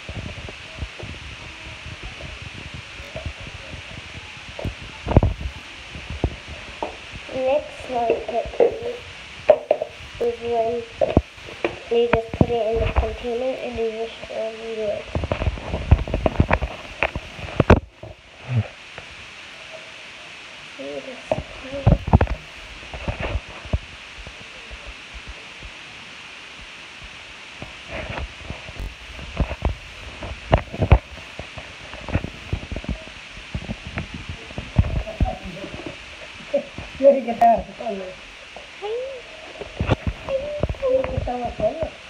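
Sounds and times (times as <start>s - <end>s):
soft low thumps: 0.0s - 14.0s, 15.0s - 18.2s
steady hiss: 0.0s - 42.0s.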